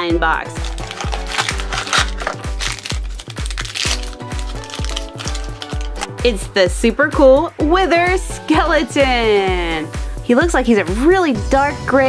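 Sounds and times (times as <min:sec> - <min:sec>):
foil wrapper crinkling: 0:00.6 - 0:06.1.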